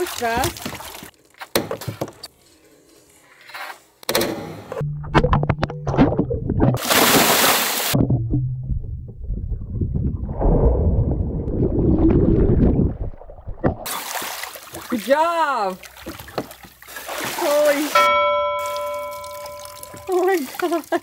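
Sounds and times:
water splashing: 0:00.0 - 0:01.2, 0:05.7 - 0:08.3, 0:11.5 - 0:21.0
loud hissing splash: 0:06.8 - 0:08.0.

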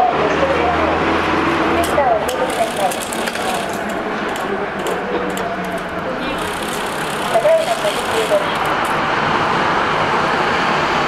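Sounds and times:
indistinct voices: 0:00.0 - 0:09.0.

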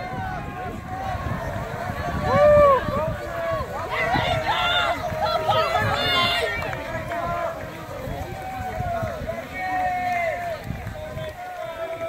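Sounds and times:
crowd shouting and cheering: 0:00.0 - 0:12.0
runners' footfalls on grass: 0:00.0 - 0:12.0.

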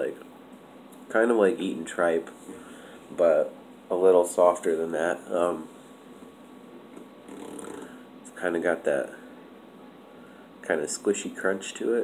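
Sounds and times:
nasal breathing: 0:02.5 - 0:03.1.

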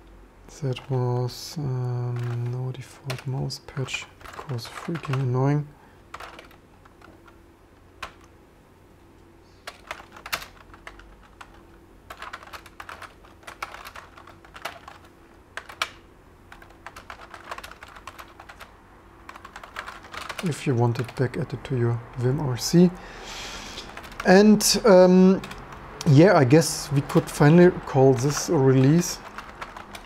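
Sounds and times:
typing on a computer keyboard: 0:02.0 - 0:05.4, 0:06.1 - 0:07.4, 0:08.0 - 0:08.3, 0:09.6 - 0:21.4, 0:23.8 - 0:24.4, 0:25.2 - 0:26.1, 0:27.0 - 0:30.0.

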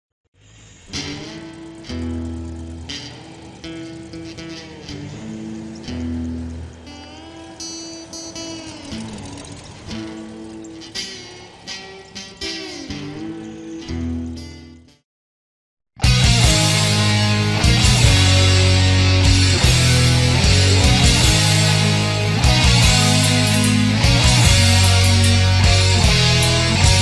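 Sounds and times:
plucked electric guitar sliding notes: 0:00.9 - 0:15.0, 0:16.0 - 0:27.0
psychobilly instrumental music: 0:00.9 - 0:15.0, 0:16.0 - 0:27.0
loud low notes: 0:16.0 - 0:27.0.

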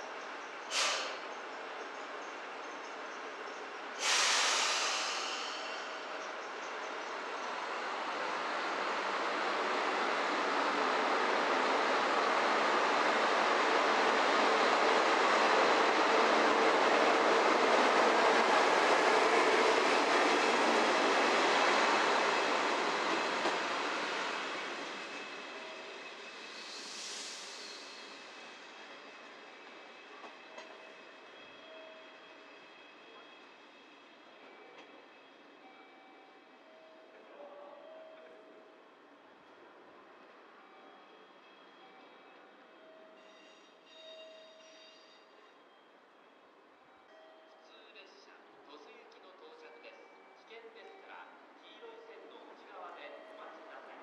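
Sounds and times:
train passing: 0:00.0 - 0:54.0
brief high hiss: 0:00.7 - 0:01.2, 0:04.0 - 0:05.9.

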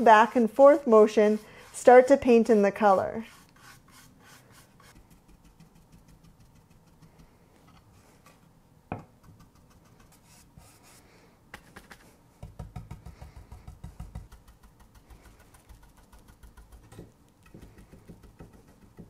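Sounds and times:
paintbrush dabbing on wood: 0:00.0 - 0:07.4, 0:13.1 - 0:19.0.

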